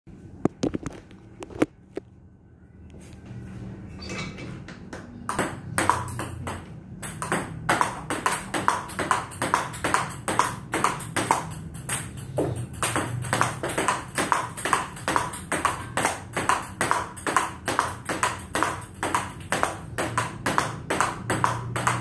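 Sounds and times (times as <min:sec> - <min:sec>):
table tennis ball hits: 0:04.9 - 0:22.0.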